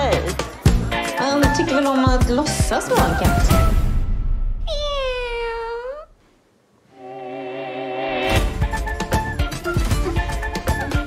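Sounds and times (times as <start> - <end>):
person imitating a cat meow: 4.7 - 6.2.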